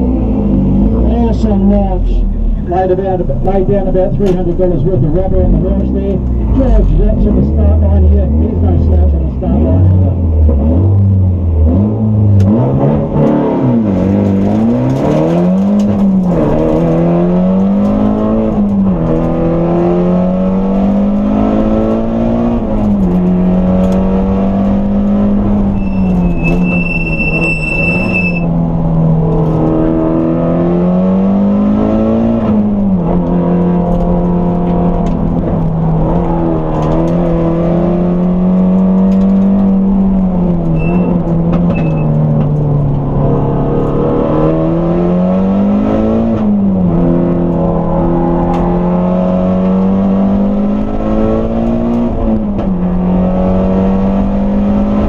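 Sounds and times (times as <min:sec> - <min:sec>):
race car engine revving: 0:00.0 - 0:55.0
high steady beep: 0:25.8 - 0:28.5
short beeps: 0:25.8 - 0:28.5, 0:40.8 - 0:42.1.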